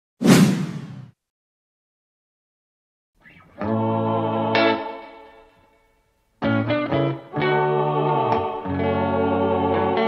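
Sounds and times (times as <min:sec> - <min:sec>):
whoosh with a hit: 0:00.2 - 0:01.2.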